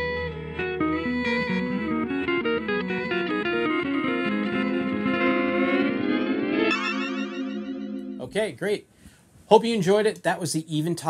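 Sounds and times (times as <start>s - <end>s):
distorted electric guitar with delay: 0.0s - 8.3s.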